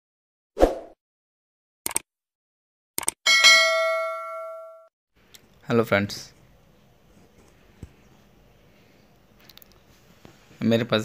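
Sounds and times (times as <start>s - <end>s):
bright bell ding: 3.3s - 4.9s.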